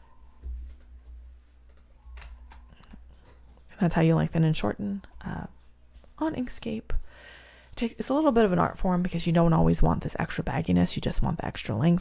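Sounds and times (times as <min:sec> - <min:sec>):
computer mouse clicks: 0:00.6 - 0:01.0, 0:01.6 - 0:02.7.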